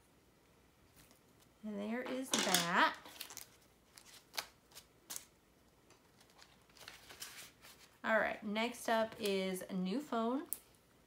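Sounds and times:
soft paper rustling: 0:00.9 - 0:01.6, 0:03.0 - 0:05.3, 0:06.0 - 0:08.0.

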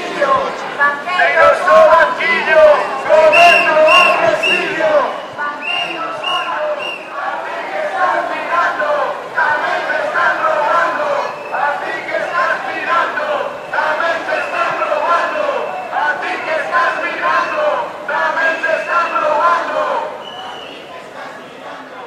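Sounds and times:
crowd chanting in unison: 0:00.0 - 0:22.0.

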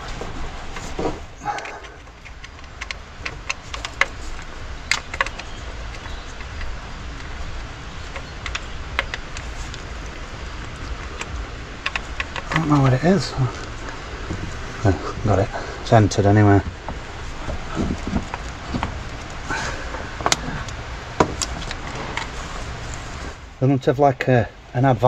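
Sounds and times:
low hum: 0:00.0 - 0:25.0.

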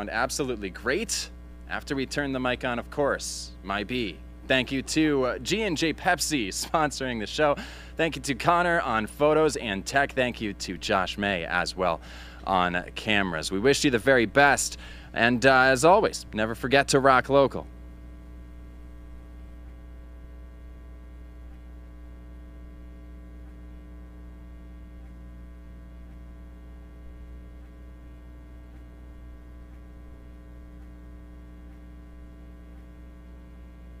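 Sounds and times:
electrical mains hum: 0:00.0 - 0:34.0.

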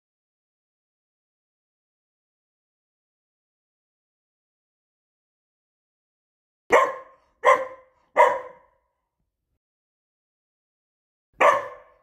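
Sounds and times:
dog barking: 0:06.7 - 0:09.0, 0:11.4 - 0:12.0.

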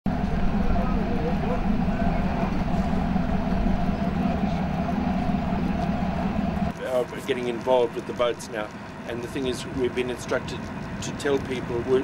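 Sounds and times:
boat engine droning: 0:00.1 - 0:12.0.

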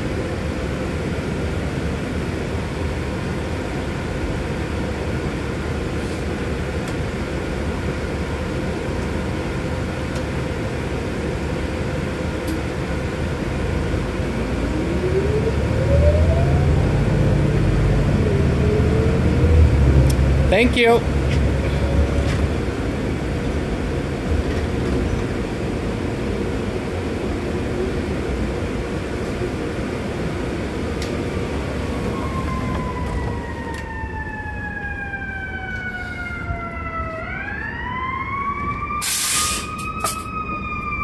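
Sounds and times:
bus engine rumble: 0:00.0 - 0:41.0
siren wailing: 0:14.0 - 0:19.9, 0:31.8 - 0:41.0
short hiss: 0:39.0 - 0:39.7.

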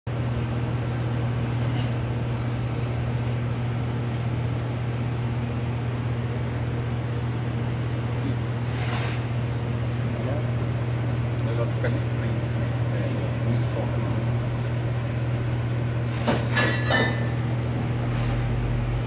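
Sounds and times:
low machine hum: 0:00.1 - 0:19.0.

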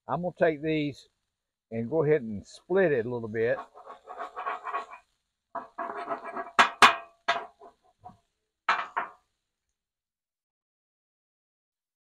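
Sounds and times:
metal spatula knocking on griddle: 0:03.6 - 0:05.0, 0:05.6 - 0:07.8, 0:08.7 - 0:09.2.

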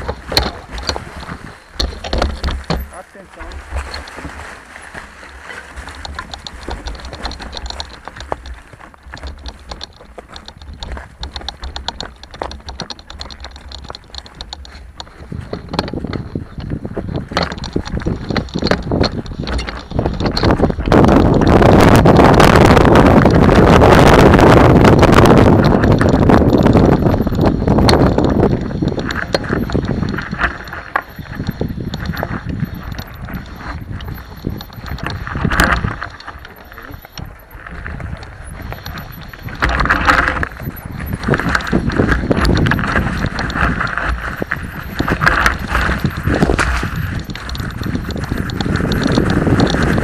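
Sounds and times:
bike rattling over stony ground: 0:00.0 - 0:50.0
wind on microphone: 0:00.0 - 0:50.0.

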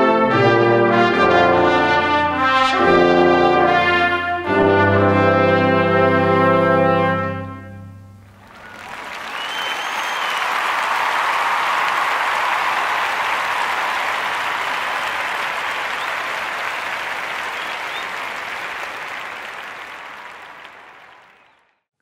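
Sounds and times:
audience applause: 0:08.3 - 0:21.8
high whistle: 0:08.5 - 0:10.8, 0:14.7 - 0:16.5, 0:17.2 - 0:18.4.

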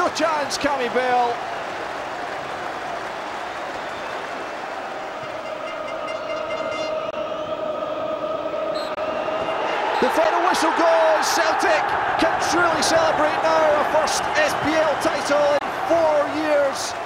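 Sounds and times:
crowd singing and cheering: 0:02.4 - 0:17.0.

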